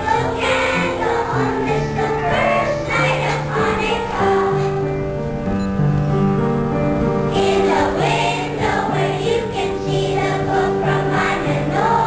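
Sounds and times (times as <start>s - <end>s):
children's choir singing: 0.0s - 5.1s, 7.3s - 12.0s.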